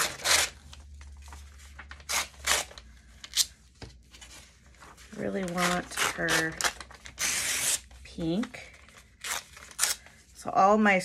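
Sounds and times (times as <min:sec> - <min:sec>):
paper ripping: 0:00.0 - 0:03.5, 0:04.2 - 0:10.0
paper rustling: 0:00.0 - 0:07.2.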